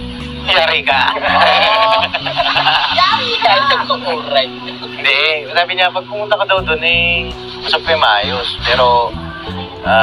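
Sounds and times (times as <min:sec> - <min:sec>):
background music with low notes: 0:00.0 - 0:10.0
person laughing: 0:01.1 - 0:03.8.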